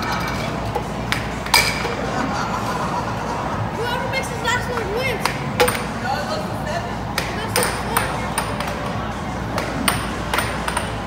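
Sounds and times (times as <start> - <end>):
air hockey puck clacking: 0.0 - 2.0, 4.7 - 6.0, 7.1 - 11.0
steady background din: 0.0 - 11.0.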